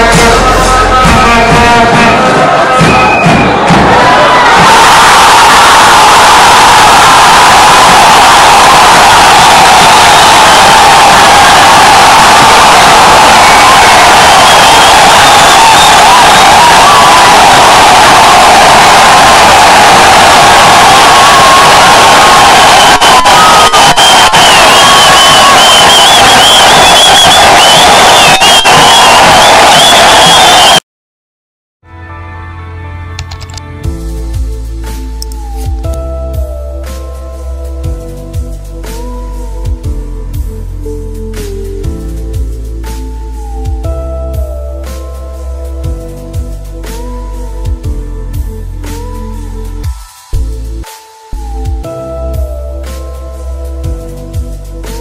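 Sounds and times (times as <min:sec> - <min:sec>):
music: 0:00.0 - 0:30.8, 0:31.8 - 0:55.0
stadium crowd cheering: 0:00.0 - 0:30.9
shrill wavering cries: 0:04.5 - 0:30.8.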